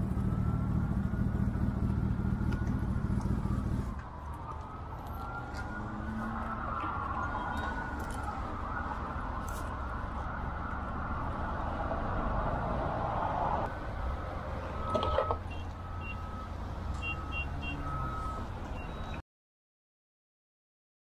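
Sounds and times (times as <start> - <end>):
emergency siren wailing: 0.0 - 19.2.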